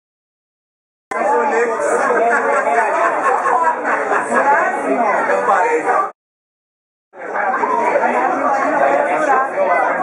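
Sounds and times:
crowd chatter: 0:01.1 - 0:06.2, 0:07.1 - 0:10.0.

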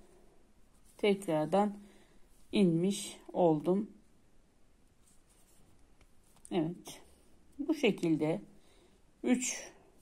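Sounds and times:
needle and thread through fabric: 0:00.5 - 0:03.8, 0:04.9 - 0:08.4.

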